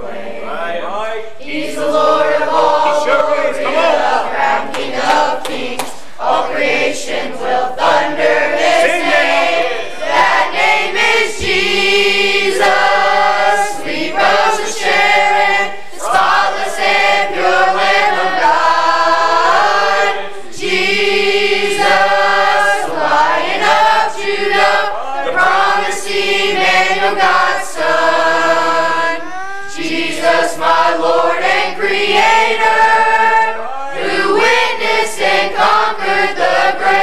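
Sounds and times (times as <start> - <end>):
youth choir singing a hymn: 0.0 - 37.0.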